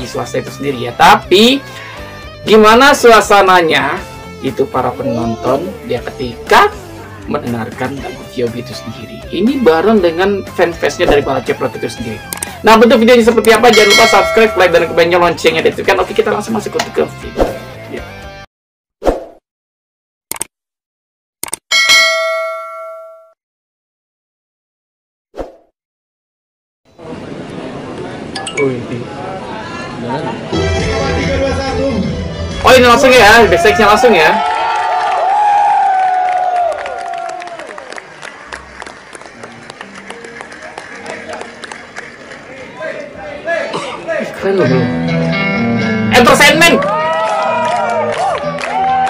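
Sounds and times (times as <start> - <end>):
notification bell ding: 13.7 - 15.0, 21.7 - 23.4, 28.4 - 28.9
crowd noise: 26.9 - 35.0, 36.9 - 49.0
electric guitar playing: 38.5 - 42.5, 44.6 - 49.0.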